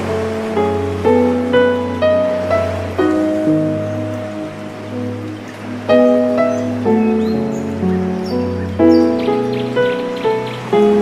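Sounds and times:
calm instrumental relaxation music: 0:00.0 - 0:11.0
ocean waves: 0:00.0 - 0:11.0.

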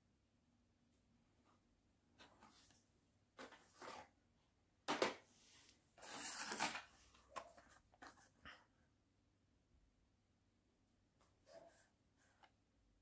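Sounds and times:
cardboard and plastic packaging rustling: 0:02.2 - 0:04.2, 0:06.0 - 0:08.4.

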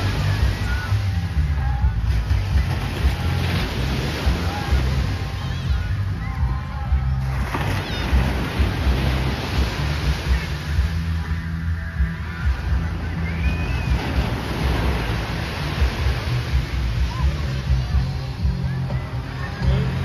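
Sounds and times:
background music with bass line: 0:00.0 - 0:20.0
small waves breaking on beach: 0:00.0 - 0:20.0.

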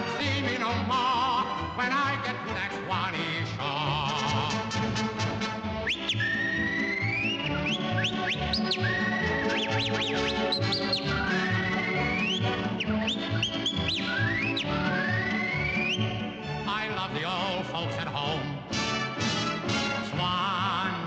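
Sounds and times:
dance-band accompaniment: 0:04.3 - 0:16.6, 0:18.7 - 0:20.2
whistled melody: 0:05.6 - 0:16.7.

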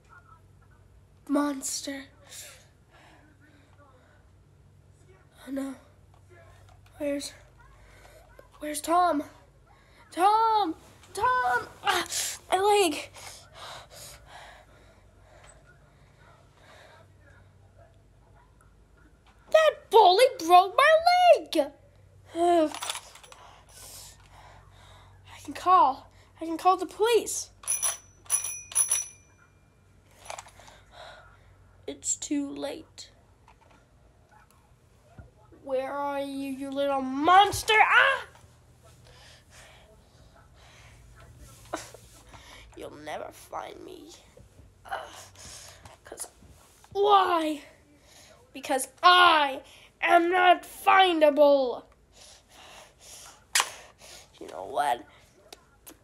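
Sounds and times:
toy telephone bell ringing: 0:27.6 - 0:29.5.

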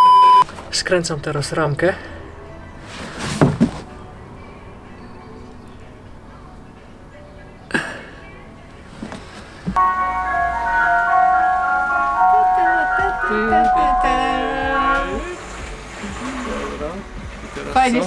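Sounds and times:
ice cream van chime tune: 0:09.8 - 0:15.5.

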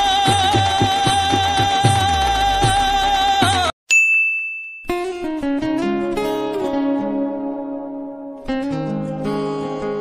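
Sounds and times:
music: 0:00.0 - 0:03.7, 0:04.9 - 0:10.0
high bell-like ding: 0:03.9 - 0:05.3
acoustic guitar music: 0:04.9 - 0:10.0.

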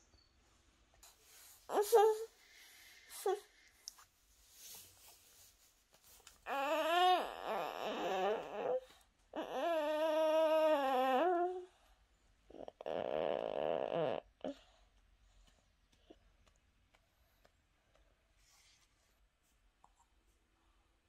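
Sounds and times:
toddler groaning: 0:06.5 - 0:11.6.

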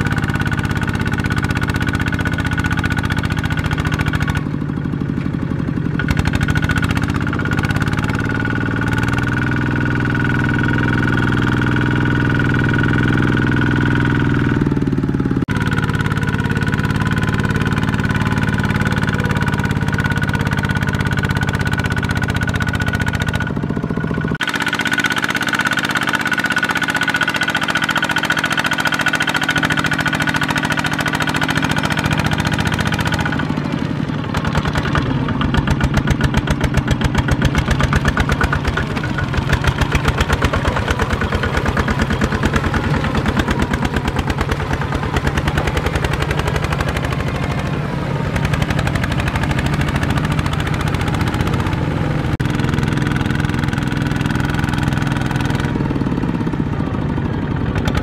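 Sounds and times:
diesel engine chugging: 0:00.0 - 0:58.0.

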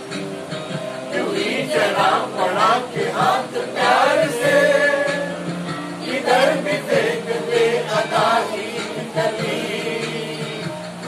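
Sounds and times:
group of people singing in chorus: 0:00.0 - 0:11.0.

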